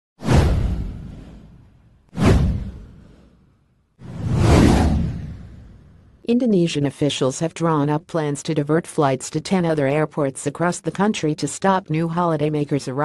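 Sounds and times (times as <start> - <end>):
whoosh sound effects: 4.0 - 6.1.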